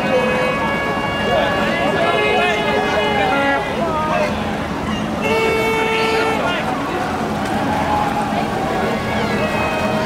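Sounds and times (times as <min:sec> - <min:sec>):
boat horn blasts: 0:00.0 - 0:06.7
voices of onlookers: 0:00.0 - 0:10.0.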